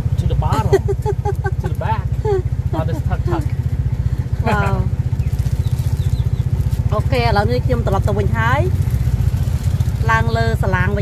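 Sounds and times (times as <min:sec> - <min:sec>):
small motorcycle engine idling: 0:00.0 - 0:11.0.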